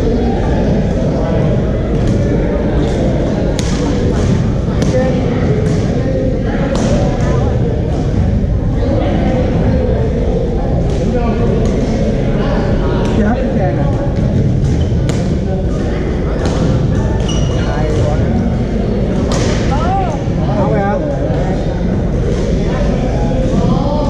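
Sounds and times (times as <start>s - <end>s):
echoing din of players' voices: 0.0s - 24.0s.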